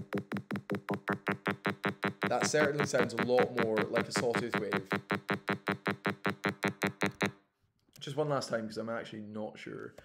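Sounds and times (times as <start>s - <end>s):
pulsing synthesized tone: 1.1s - 7.3s.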